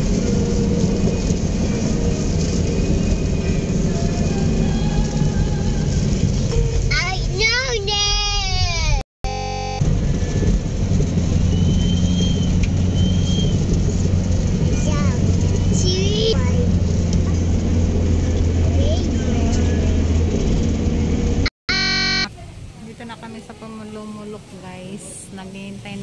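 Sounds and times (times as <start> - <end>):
vehicle engine and road rumble: 0.0 - 26.0
faint voices: 22.2 - 26.0.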